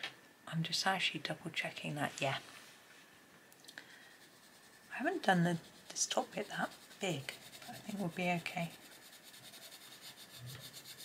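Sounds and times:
coloured pencil rubbing on paper: 0:04.0 - 0:11.0.

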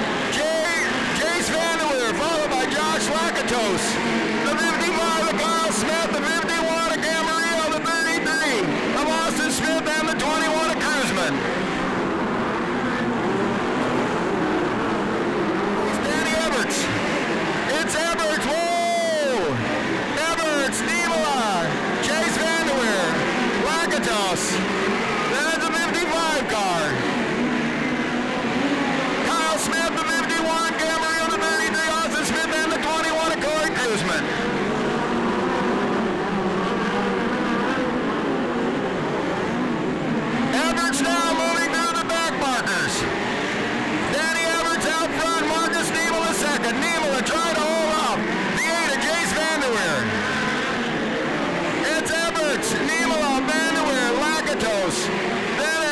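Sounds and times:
race car engines passing: 0:00.0 - 0:55.9.

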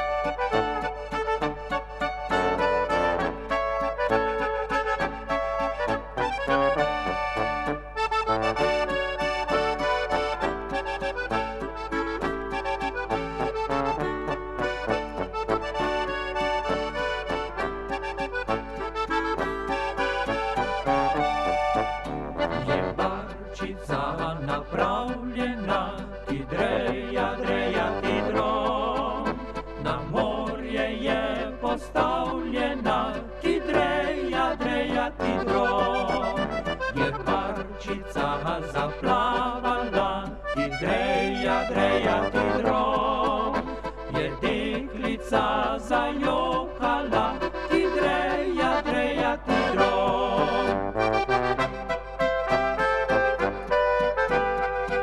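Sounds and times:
brass: 0:00.0 - 0:23.5, 0:26.5 - 0:55.0
accordion: 0:00.0 - 0:55.0
clarinet: 0:00.0 - 0:55.0.

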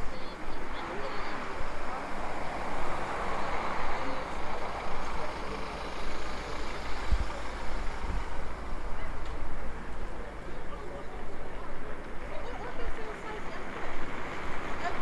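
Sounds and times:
vehicle engine and tyre noise: 0:00.0 - 0:15.0.

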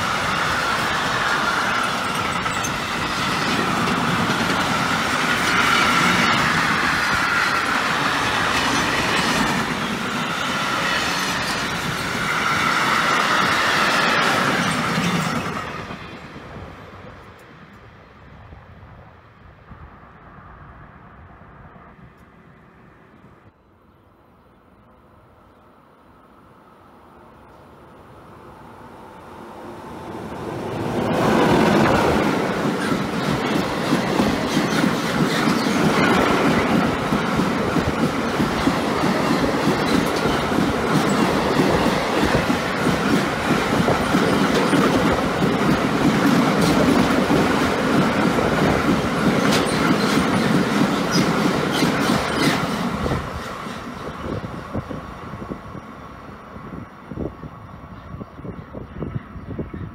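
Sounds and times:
freight train rumble: 0:00.0 - 0:23.6, 0:24.6 - 0:59.9.

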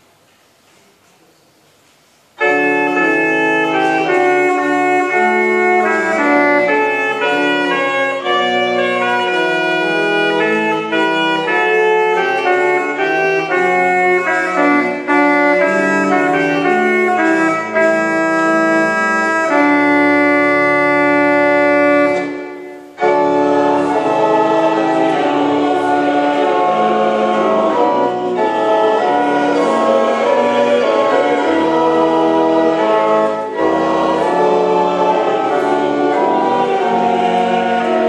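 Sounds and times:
pipe organ playing lively piece: 0:02.4 - 0:38.0.

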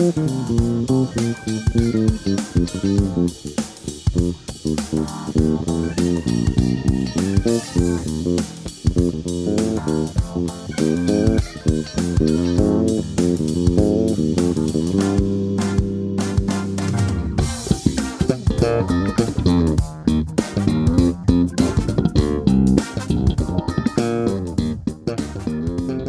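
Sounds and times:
electric bass played with fingers: 0:00.0 - 0:26.0.

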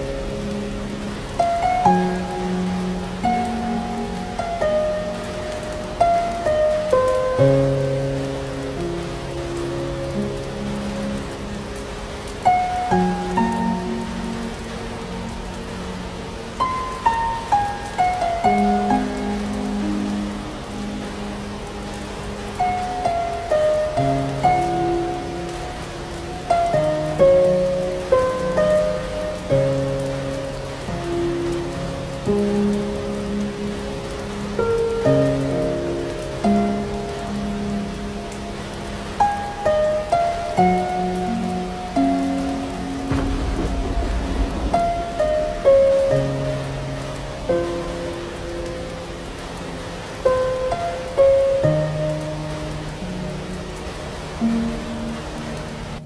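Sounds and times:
gentle instrumental music: 0:00.0 - 0:56.0
steady rain: 0:00.0 - 0:56.0
low thunder rumble: 0:42.9 - 0:47.9.

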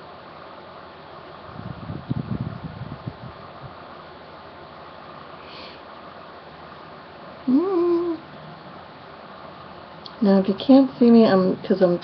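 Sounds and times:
room fan hissing: 0:00.0 - 0:12.0.

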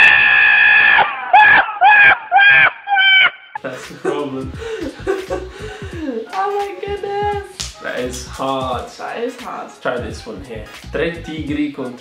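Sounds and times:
goat screaming: 0:00.0 - 0:03.5.

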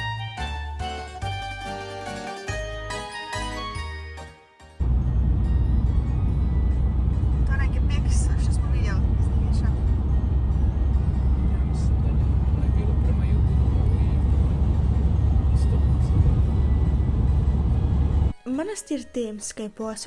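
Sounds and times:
car cabin road rumble: 0:04.8 - 0:18.3.

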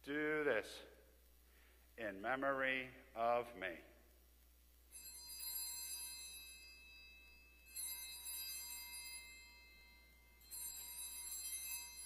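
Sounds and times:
bell ringing: 0:04.9 - 0:12.0.

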